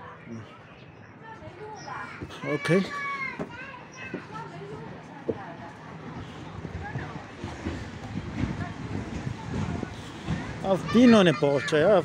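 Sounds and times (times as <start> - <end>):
children and adults chatting: 0.0 - 12.0
high child's voice: 2.0 - 4.7.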